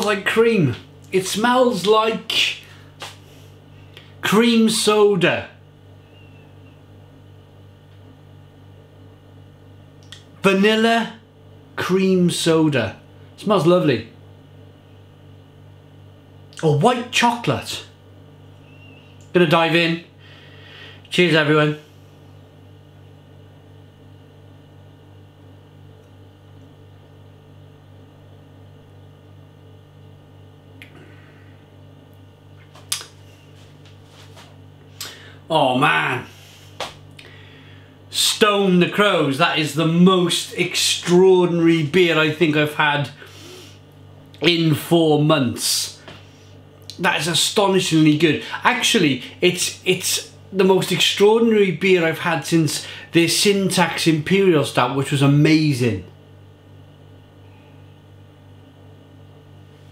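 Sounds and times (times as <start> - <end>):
low electrical hum: 0.0 - 59.9.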